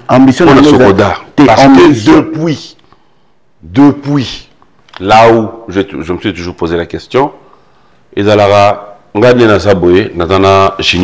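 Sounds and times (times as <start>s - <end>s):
man talking: 0.0s - 2.8s, 3.6s - 7.5s, 8.1s - 11.0s.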